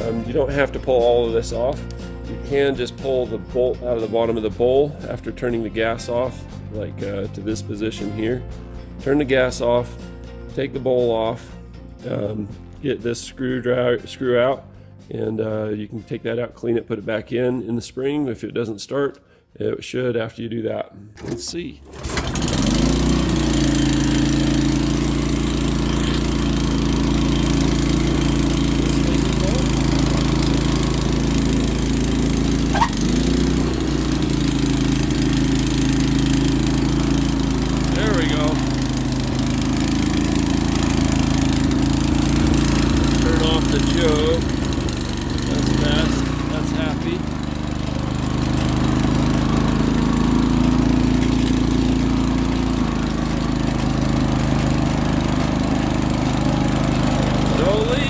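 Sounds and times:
small engine running: 0:21.9 - 0:58.0.

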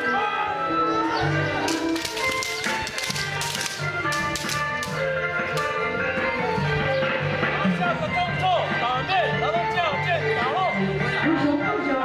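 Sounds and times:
background music: 0:00.0 - 0:12.0
bamboo swords clacking: 0:01.6 - 0:05.8.

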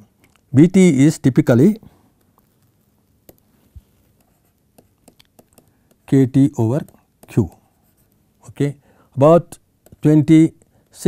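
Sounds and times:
stylus tapping: 0:02.2 - 0:08.4, 0:09.8 - 0:10.9
stylus scratching on pen tablet: 0:03.2 - 0:08.2.

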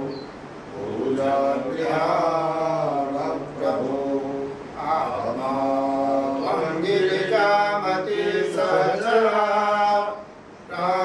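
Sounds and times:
person chanting: 0:00.7 - 0:11.0.

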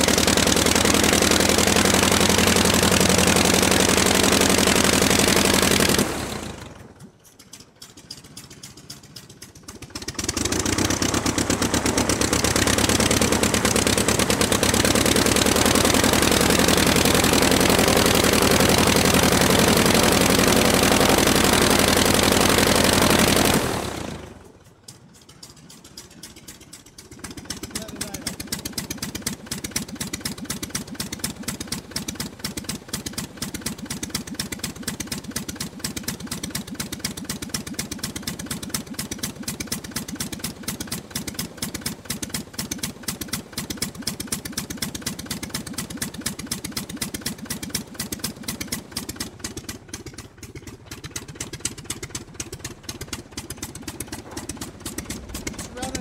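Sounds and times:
aircraft piston engine running: 0:00.0 - 0:56.0.

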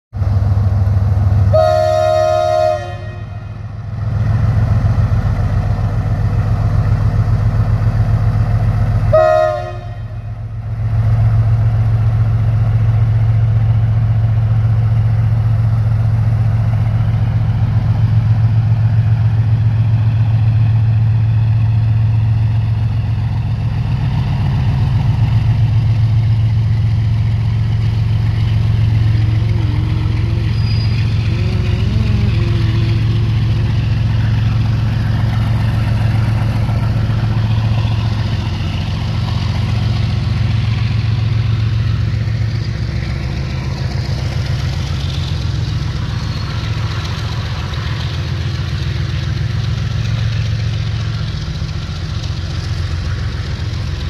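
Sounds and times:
diesel engine droning: 0:00.2 - 0:54.0
locomotive horn blasts: 0:01.5 - 0:03.7, 0:09.1 - 0:10.5
wagons rumbling past: 0:12.6 - 0:54.0.

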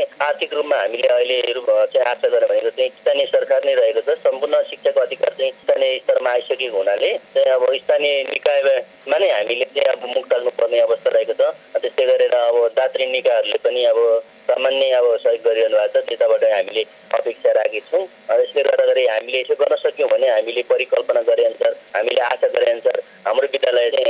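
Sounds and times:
person speaking over telephone: 0:00.0 - 0:24.0.

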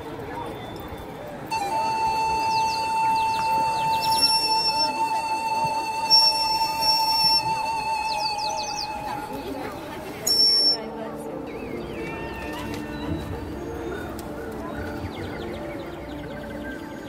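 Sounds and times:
steady high whistle tone: 0:00.3 - 0:10.9.

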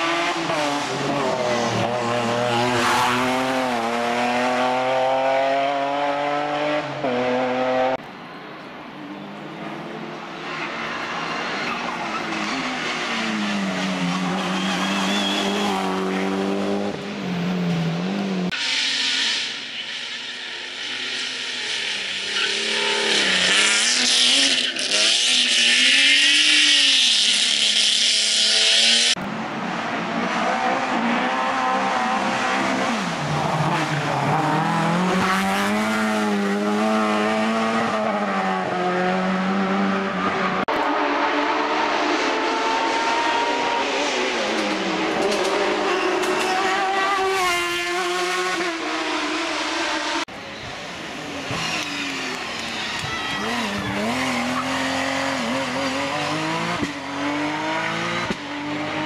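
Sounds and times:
race car engines at full throttle: 0:00.0 - 0:59.0
tyres squealing: 0:10.5 - 0:16.1.

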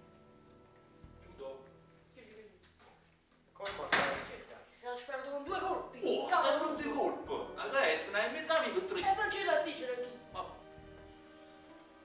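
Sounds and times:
men talking loudly: 0:06.0 - 0:09.2.

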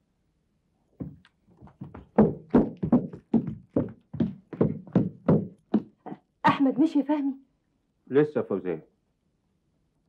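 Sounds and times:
footsteps down indoor stairs: 0:01.0 - 0:06.6.

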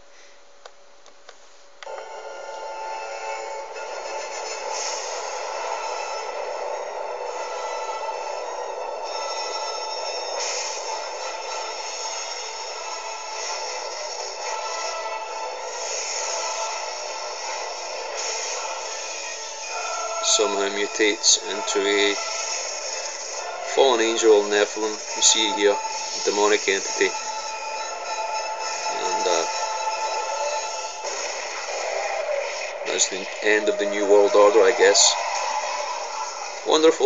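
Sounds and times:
tinny film music and effects: 0:01.8 - 0:37.0.

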